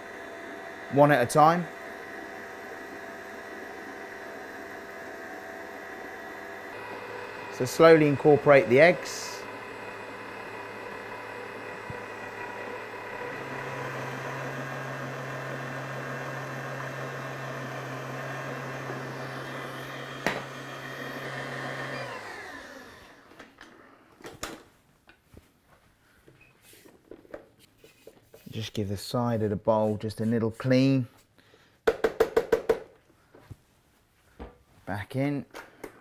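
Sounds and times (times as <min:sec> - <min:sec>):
stand mixer motor running: 0:00.0 - 0:23.3.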